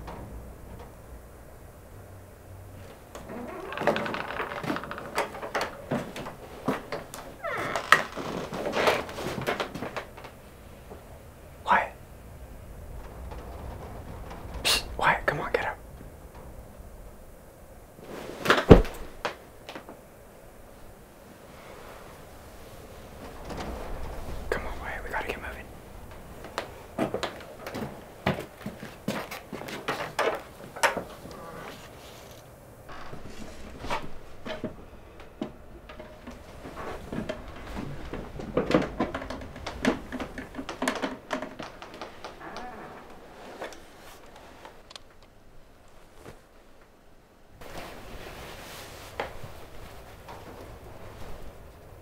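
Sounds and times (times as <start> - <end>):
knocks and clatter: 0.0 - 11.1, 12.1 - 14.7, 32.9 - 43.7
bedding rustling: 0.0 - 52.0
hushed whispering: 11.6 - 12.1, 14.6 - 15.9, 24.4 - 25.8.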